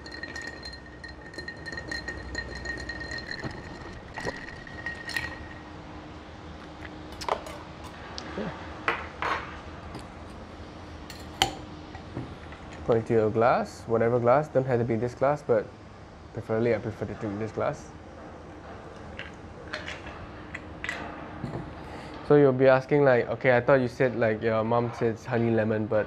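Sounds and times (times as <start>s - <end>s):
glassware and bar tools clinking: 0.0s - 5.7s
spoon clinking in glass: 0.0s - 5.7s.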